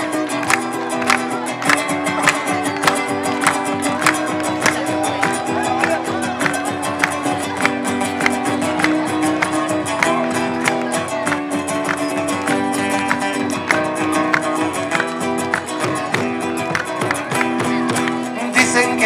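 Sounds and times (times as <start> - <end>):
acoustic guitars strumming folk music: 0.0 - 19.0.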